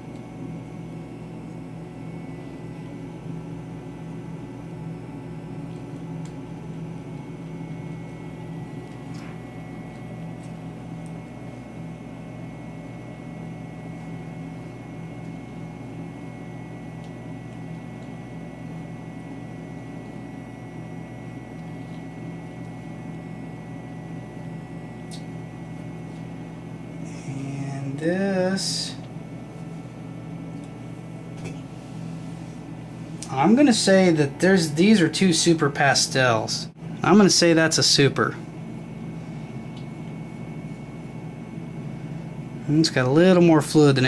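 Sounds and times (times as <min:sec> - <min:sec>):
low machine hum: 0:00.0 - 0:44.0
thin high whine: 0:26.9 - 0:29.1.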